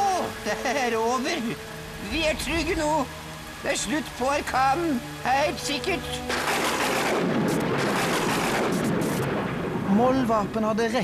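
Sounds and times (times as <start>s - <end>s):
heavy rain: 0.0s - 11.0s
rushing wind: 1.8s - 3.8s, 6.4s - 10.6s.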